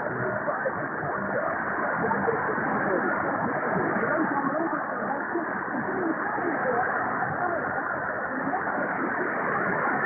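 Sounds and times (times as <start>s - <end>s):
faint unintelligible radio audio: 0.0s - 10.0s
radio static and hiss: 0.0s - 10.0s.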